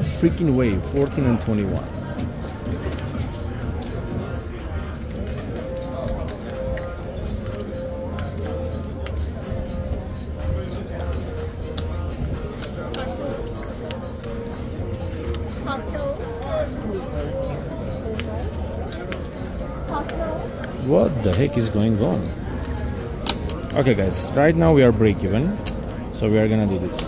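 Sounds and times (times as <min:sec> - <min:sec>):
murmur of distant voices: 0:00.0 - 0:27.0
music: 0:00.0 - 0:27.0.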